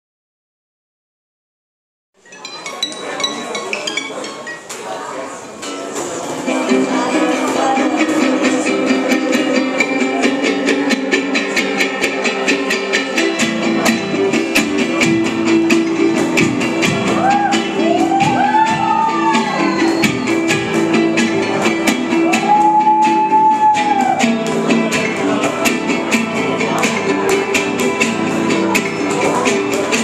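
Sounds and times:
acoustic guitars strumming: 2.2 - 30.0
voices: 2.3 - 30.0.

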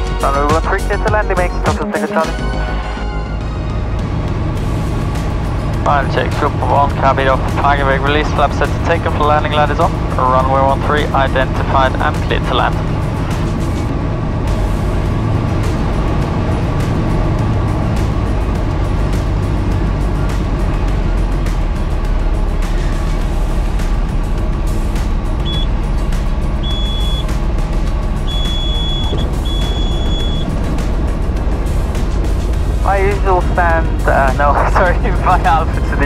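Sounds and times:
background music: 0.0 - 36.0
aircraft engine and propeller droning: 2.2 - 36.0
high warning beeps: 25.4 - 25.7, 26.6 - 27.3, 28.3 - 30.5.

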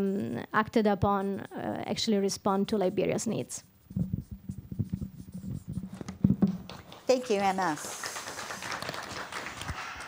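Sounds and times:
audience applause: 6.9 - 10.0.

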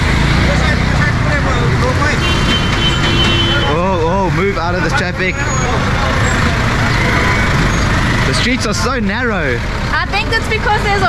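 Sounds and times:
vehicle engines running: 0.0 - 11.0.

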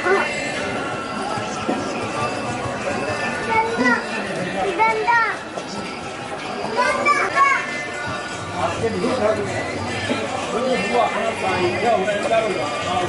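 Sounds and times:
babble of voices: 0.0 - 13.0.

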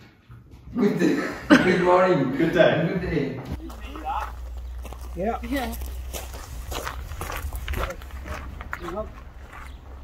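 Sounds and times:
footsteps crunching on gravel: 3.5 - 10.0.

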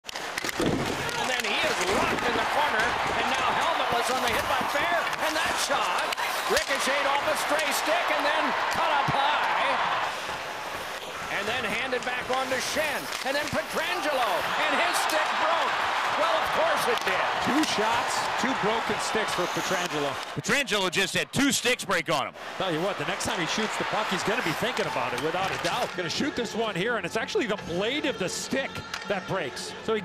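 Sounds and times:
hockey sticks and puck clacking: 0.0 - 20.6, 22.8 - 26.6, 28.7 - 29.2
arena crowd noise: 0.0 - 30.0
hockey stick snapping: 0.1 - 8.2, 10.8 - 14.1, 28.9 - 29.1
commentator talking: 11.3 - 30.0.

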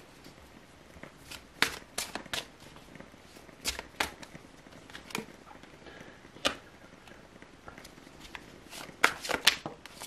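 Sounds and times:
cards being shuffled: 1.0 - 5.4, 7.7 - 10.0.

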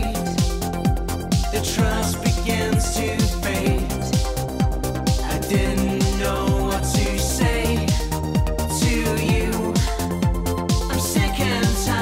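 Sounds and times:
person singing: 0.0 - 0.5, 1.4 - 4.4, 5.2 - 12.0
electronic kick drum: 0.0 - 12.0
sustained synthesizer chords: 0.0 - 12.0.

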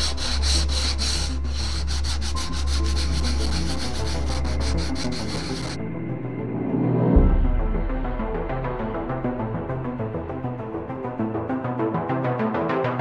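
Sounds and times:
sandpaper rubbing on wood: 0.0 - 5.8.

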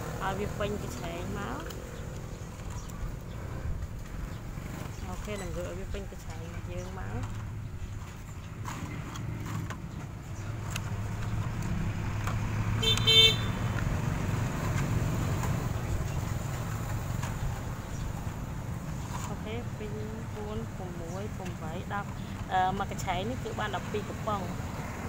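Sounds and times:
vehicle engine rumbling past: 0.0 - 25.0.

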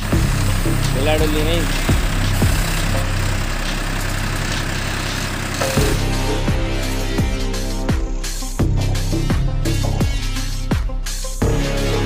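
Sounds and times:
tractor diesel engine running: 0.0 - 10.0
electronic music with bass drum: 0.0 - 12.0.

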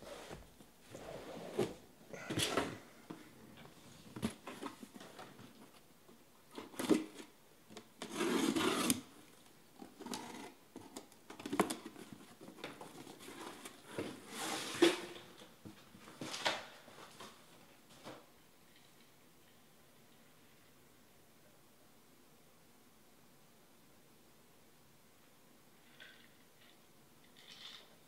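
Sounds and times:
cardboard scraping on table: 0.0 - 2.8, 8.0 - 9.1.

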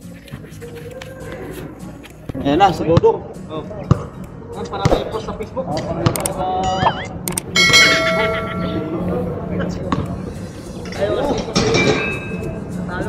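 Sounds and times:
basketball bouncing on concrete: 3.9 - 4.1
bright ringing chime: 7.6 - 9.0.

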